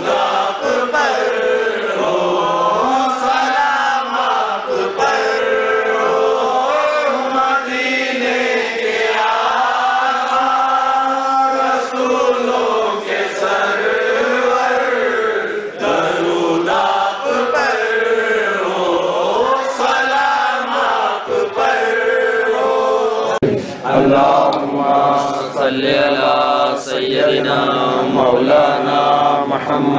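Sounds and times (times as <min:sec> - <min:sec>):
male voices chanting: 0:00.0 - 0:29.9.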